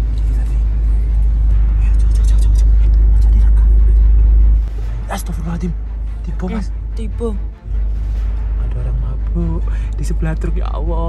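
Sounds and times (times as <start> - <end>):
deep rumble: 0.0 - 11.0
man speaking: 4.9 - 7.4.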